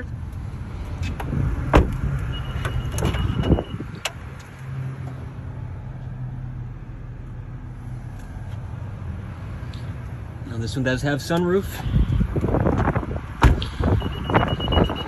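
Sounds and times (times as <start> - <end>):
car door knocks and clicks: 1.1 - 3.6, 12.7 - 13.6.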